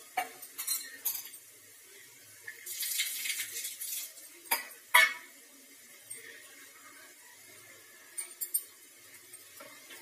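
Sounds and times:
utensils clinking on cookware: 0.1 - 1.6, 2.7 - 5.4, 8.1 - 10.0.

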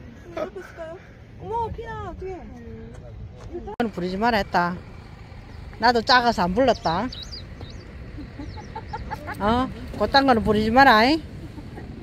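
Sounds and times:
steady low rumble: 0.0 - 12.0
high bird chirps: 5.4 - 9.1.

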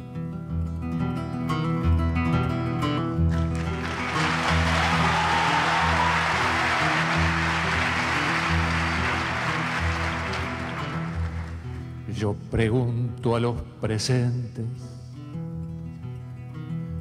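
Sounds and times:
audience applauding: 3.3 - 11.9.

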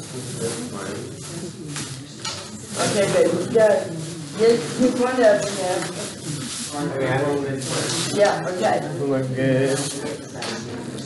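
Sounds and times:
plastic bags rustling: 2.7 - 10.0.

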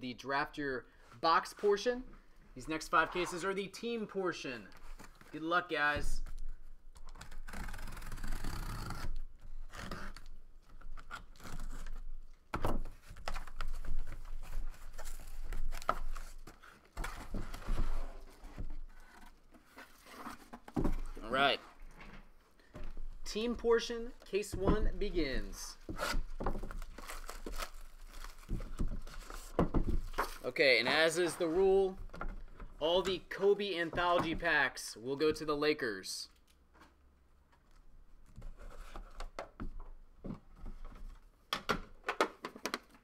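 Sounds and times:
cardboard scraping and rubbing: 13.8 - 21.9
plastic wrap crinkling: 26.2 - 30.5.

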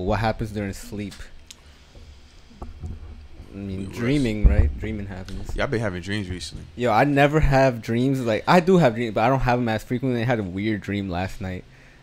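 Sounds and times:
low rumble: 2.1 - 6.8.

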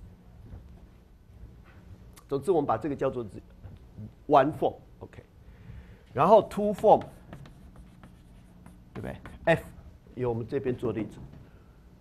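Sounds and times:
chalk tapping and scratching: 6.2 - 9.8.

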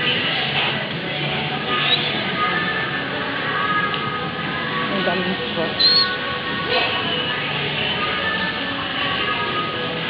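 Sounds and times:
background music: 0.0 - 10.0
murmur of voices: 0.0 - 10.0.

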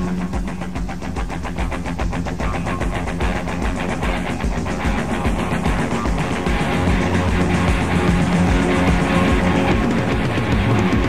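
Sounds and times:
rock band playing fast rhythm: 0.0 - 11.0.

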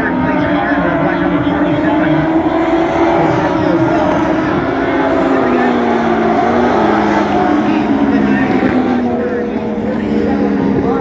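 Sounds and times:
crowd chatter: 0.0 - 11.0
race car engines: 0.0 - 11.0.

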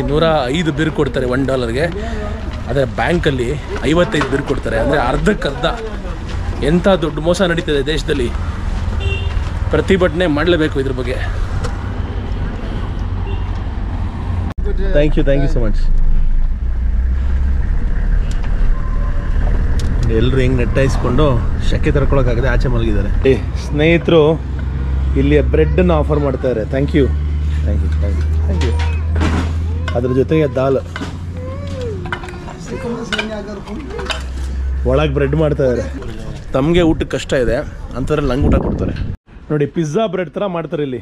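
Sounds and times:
people's voices: 0.0 - 8.6, 18.1 - 40.9
vehicle engine rumble: 0.0 - 39.2
road noise: 0.0 - 41.0
clinks and scraping on steel plate: 32.1 - 34.6.

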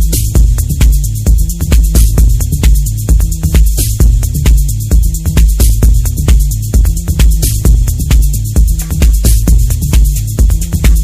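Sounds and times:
techno kick drum: 0.0 - 11.0
ticking hi-hats: 0.0 - 11.0.

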